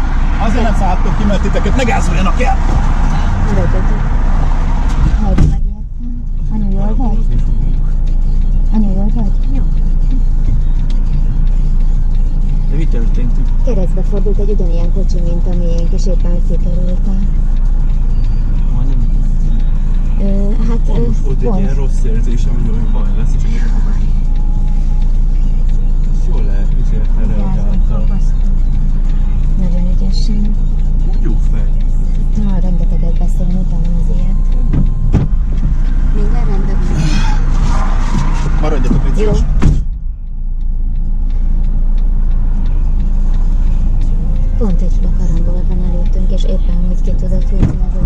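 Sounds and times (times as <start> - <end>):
car rumble inside cabin: 0.0 - 48.0
hazard flasher relay ticking: 0.0 - 48.0.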